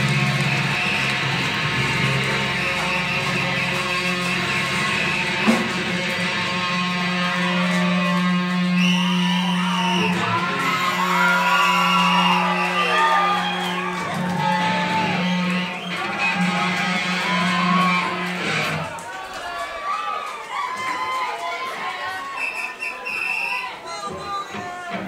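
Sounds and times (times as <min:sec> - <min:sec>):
droning electric guitar note: 0:00.0 - 0:11.2, 0:14.6 - 0:18.8
crowd yelling: 0:00.0 - 0:25.0.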